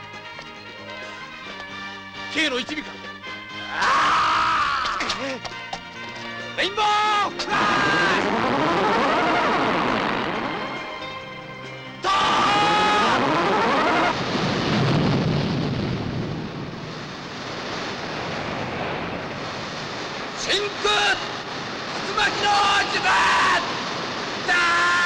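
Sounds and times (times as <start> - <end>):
broad rushing noise: 7.4 - 11.0, 12.1 - 25.0.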